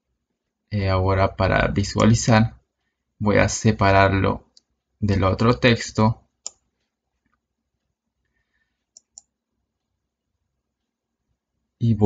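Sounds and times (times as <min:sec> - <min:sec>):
computer mouse clicks: 0:06.4 - 0:09.4.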